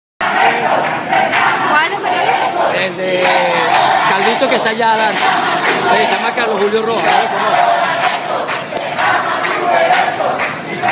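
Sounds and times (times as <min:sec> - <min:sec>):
crowd shouting: 0:00.2 - 0:10.9.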